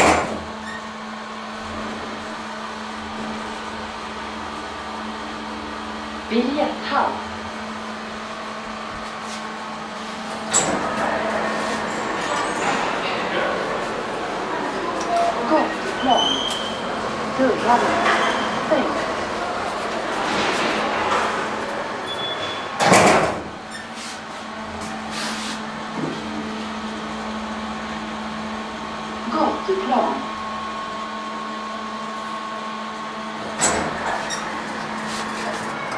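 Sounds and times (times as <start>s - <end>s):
elevator clunk: 0.0s - 0.8s, 10.3s - 23.9s, 33.4s - 35.9s
elevator machine hum: 0.0s - 35.9s.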